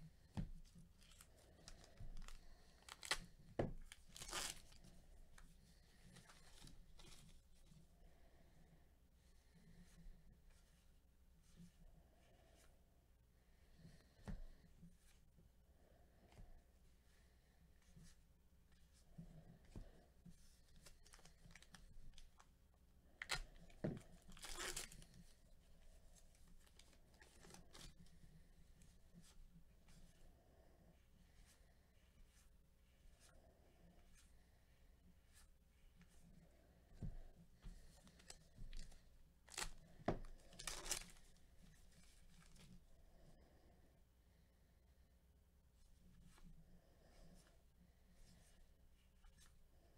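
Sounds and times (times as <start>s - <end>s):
cards rustling: 1.0s - 4.9s, 20.8s - 22.5s, 23.2s - 25.2s, 26.6s - 28.0s, 37.8s - 41.4s
plastic wrapper crackling: 2.2s - 3.2s, 3.9s - 4.8s, 40.5s - 41.1s
plastic wrapper ripping: 2.8s - 3.2s, 3.9s - 4.8s, 24.3s - 25.0s, 39.5s - 39.8s, 40.5s - 41.2s.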